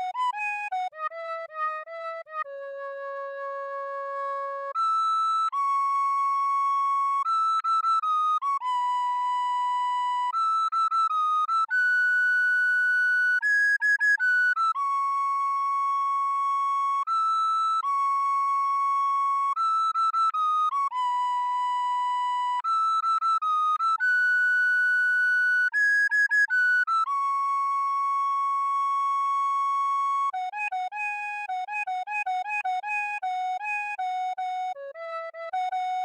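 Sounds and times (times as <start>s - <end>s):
recorder solo melody: 15.9s - 36.0s.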